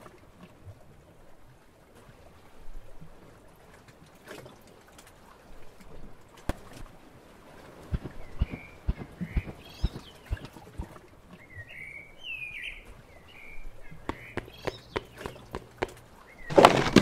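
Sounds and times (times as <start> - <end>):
birds chirping: 7.8 - 17.0
soft footstep thumps: 7.9 - 11.0, 14.1 - 17.0.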